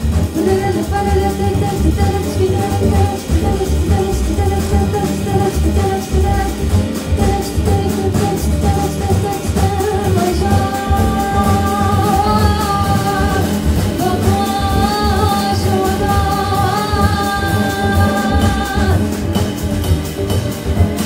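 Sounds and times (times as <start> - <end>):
jazz band playing: 0.0 - 21.0.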